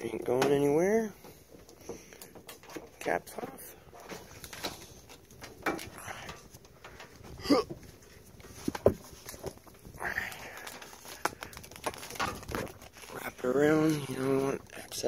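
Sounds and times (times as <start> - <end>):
cable and metal box handled: 0.1 - 15.0.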